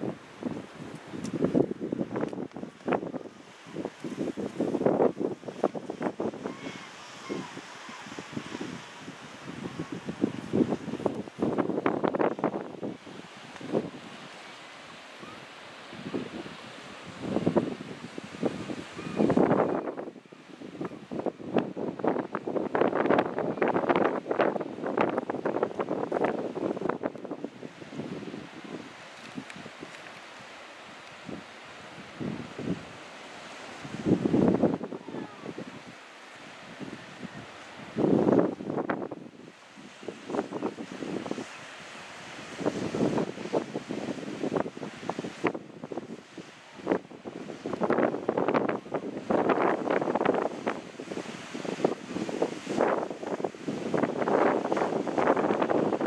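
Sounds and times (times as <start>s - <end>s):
wind buffeting microphone: 0.0s - 14.4s, 15.2s - 30.2s, 31.0s - 56.0s.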